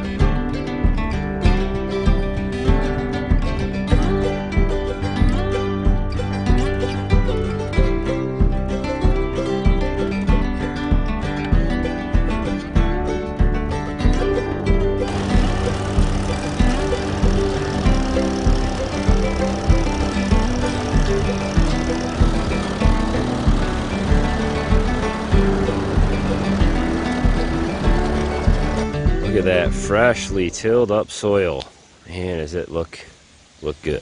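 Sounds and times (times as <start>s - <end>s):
country music with guitar and beat: 0.0s - 30.8s.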